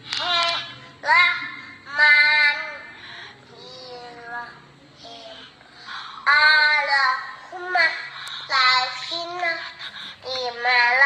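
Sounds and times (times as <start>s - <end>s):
child singing: 0.2s - 2.9s, 3.5s - 5.5s, 6.2s - 11.0s.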